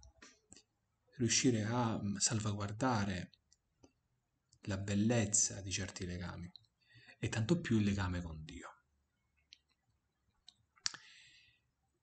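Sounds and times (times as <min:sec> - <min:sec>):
intake of breath: 0:06.8 - 0:07.2, 0:11.0 - 0:11.7
mouth clicks: 0:10.5 - 0:11.2
lip smack: 0:10.8 - 0:11.1.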